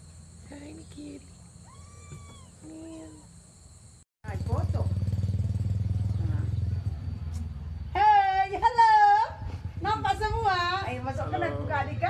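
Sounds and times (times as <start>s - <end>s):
kitten mewing: 1.6s - 2.7s.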